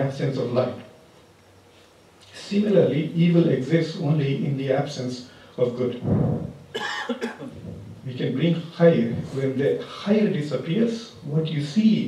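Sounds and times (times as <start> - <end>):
man coughing: 6.7 - 7.6.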